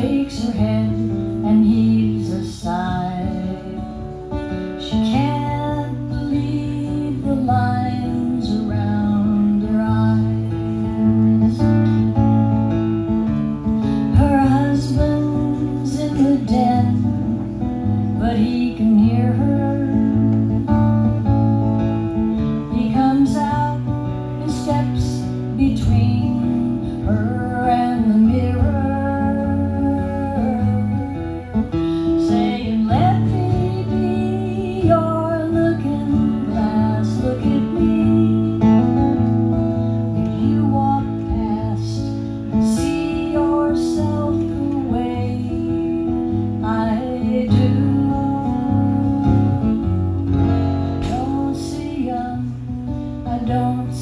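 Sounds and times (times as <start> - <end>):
acoustic guitar strumming: 0.0 - 54.0
woman singing: 0.0 - 54.0.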